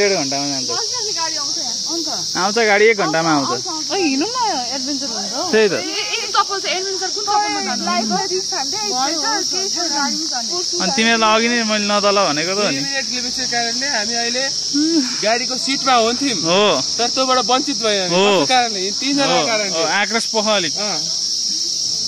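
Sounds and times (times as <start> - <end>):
people talking: 0.0 - 21.1
high-pitched insect drone: 0.0 - 22.0.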